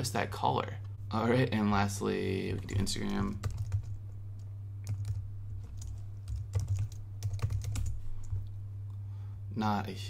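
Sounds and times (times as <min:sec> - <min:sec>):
steady low hum: 0:00.0 - 0:10.0
typing on computer keyboard: 0:03.0 - 0:04.0, 0:04.8 - 0:08.4.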